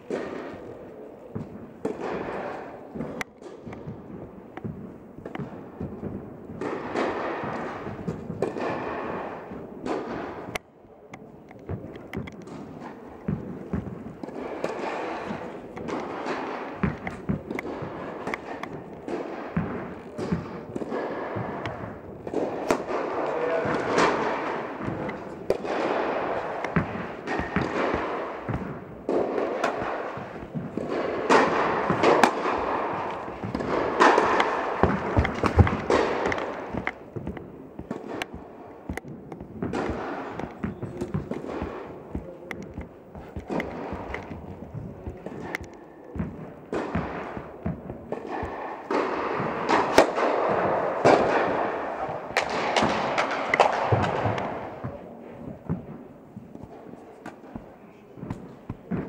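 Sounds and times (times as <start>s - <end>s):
tennis balls bouncing: 0.0s - 8.8s, 9.4s - 59.0s
tennis balls struck by rackets: 0.0s - 59.0s
people's voices: 9.9s - 59.0s.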